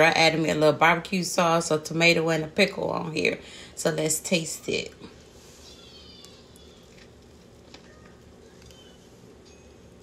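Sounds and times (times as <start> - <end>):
faint chewing: 5.0 - 10.0.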